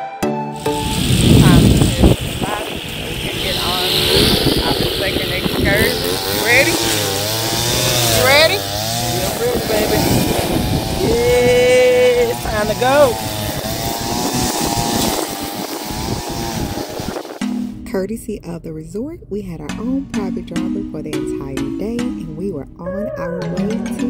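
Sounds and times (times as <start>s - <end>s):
music: 0.0s - 5.7s, 17.0s - 24.0s
wind buffeting microphone: 0.8s - 17.4s
voices talking and laughing: 4.6s - 13.7s, 22.8s - 24.0s.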